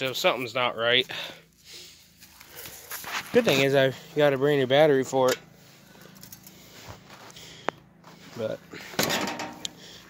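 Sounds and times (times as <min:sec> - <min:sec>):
short rattle: 0:08.8 - 0:10.0.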